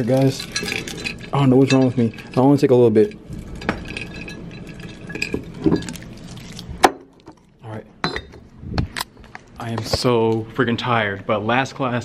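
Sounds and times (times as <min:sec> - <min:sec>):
candies rattling in a glass jar: 0:00.0 - 0:06.7.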